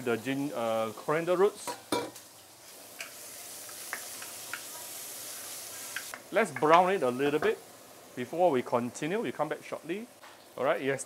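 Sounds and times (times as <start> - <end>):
food sizzling in oil: 0.0 - 11.0.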